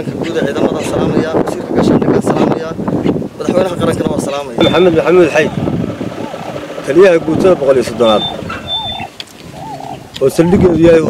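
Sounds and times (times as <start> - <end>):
man speaking: 3.4 - 5.7, 6.8 - 8.5, 10.2 - 11.0.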